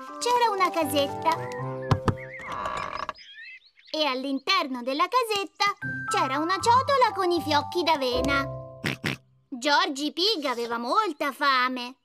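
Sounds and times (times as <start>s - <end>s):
soft background music: 0.0s - 2.5s, 5.8s - 8.9s
cartoon door creaking open: 2.3s - 3.2s.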